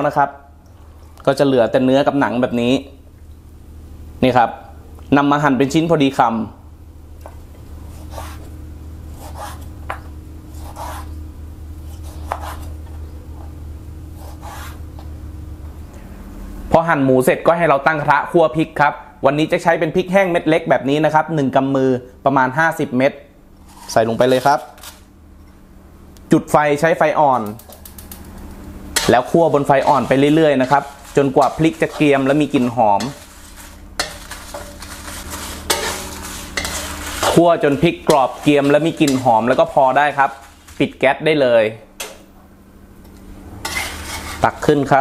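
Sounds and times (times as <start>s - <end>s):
wooden spatula scraping wok: 7.8s - 10.0s, 10.6s - 11.2s, 23.6s - 25.1s, 28.9s - 41.1s, 43.6s - 44.9s
knife cutting meat: 7.9s - 8.5s, 9.1s - 9.7s, 10.5s - 11.2s, 11.8s - 12.8s, 14.2s - 15.1s.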